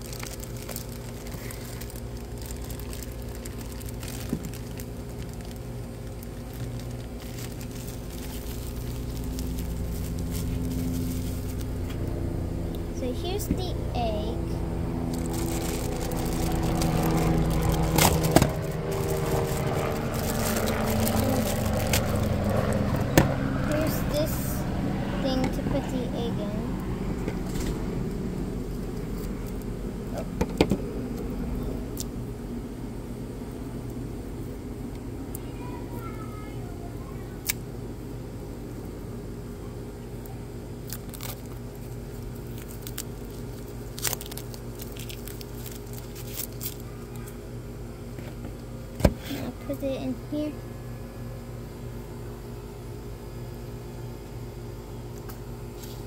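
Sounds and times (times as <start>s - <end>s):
plastic wrapping crinkling: 0.0s - 12.0s, 15.1s - 22.8s, 40.9s - 46.9s
low hum: 0.0s - 35.4s.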